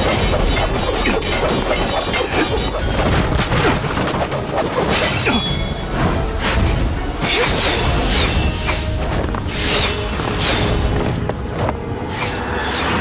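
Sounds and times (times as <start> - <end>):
background music: 0.0 - 13.0.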